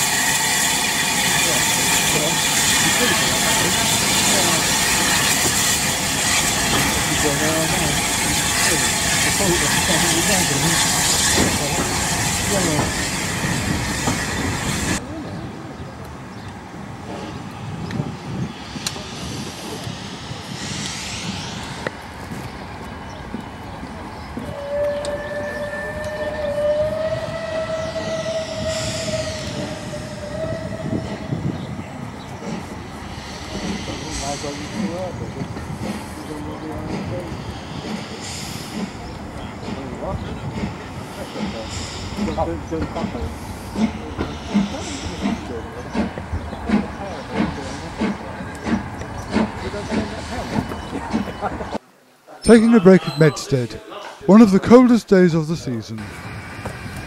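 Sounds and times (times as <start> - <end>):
rhythmic locomotive chuffing: 0.0 - 15.0, 16.7 - 51.8
steam hissing: 0.0 - 15.0, 17.5 - 23.2, 24.4 - 51.8
long steam whistle: 24.5 - 31.1.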